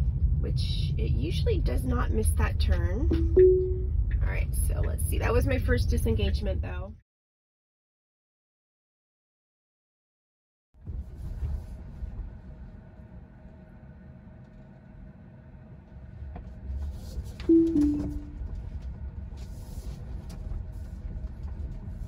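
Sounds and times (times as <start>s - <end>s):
road rumble inside car: 0.0s - 7.0s, 10.8s - 22.0s
two-note falling electronic chime: 3.1s - 4.0s, 17.5s - 18.4s.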